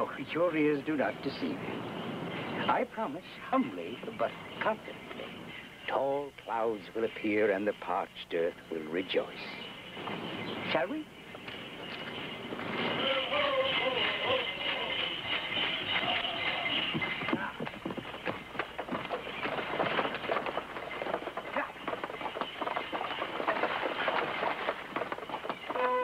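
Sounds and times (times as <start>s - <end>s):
coach rattling: 0.0s - 26.0s
horses galloping: 0.0s - 26.0s
group voices chanting: 13.0s - 15.2s.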